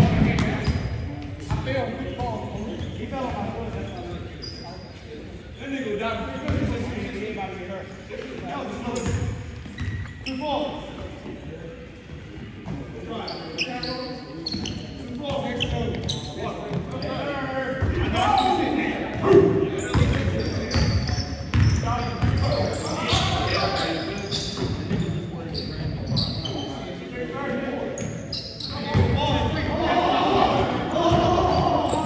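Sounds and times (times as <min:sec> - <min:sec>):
sneakers squeaking: 0:00.0 - 0:11.3, 0:12.1 - 0:27.1, 0:27.8 - 0:32.0
players calling out: 0:28.5 - 0:32.0.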